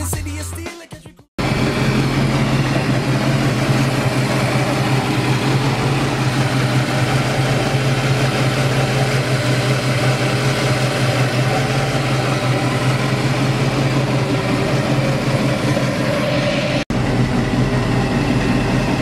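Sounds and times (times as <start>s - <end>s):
car engine idling: 1.4s - 19.0s.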